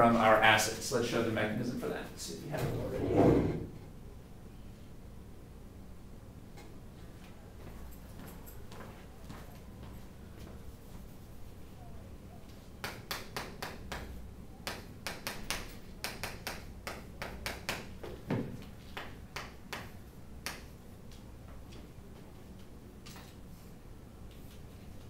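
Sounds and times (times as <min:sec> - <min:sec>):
chalk tapping on chalkboard: 0:12.8 - 0:18.2.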